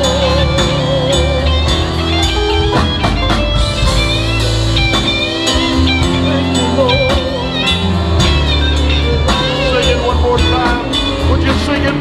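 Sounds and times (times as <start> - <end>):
bass: 0.0 - 12.0
drum kit: 0.0 - 12.0
electric guitar melody: 0.0 - 12.0.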